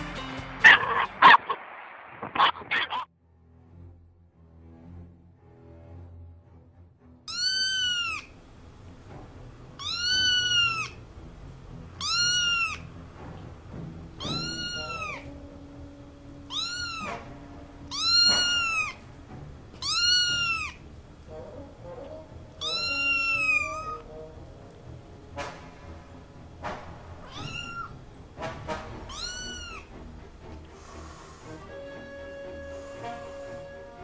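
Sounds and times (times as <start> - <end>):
kitten meowing: 7.3 - 8.3, 9.8 - 11.0, 12.0 - 12.9, 14.2 - 15.4, 16.4 - 17.3, 17.9 - 19.0, 19.8 - 20.8, 22.6 - 24.1, 27.2 - 27.9, 29.1 - 29.9.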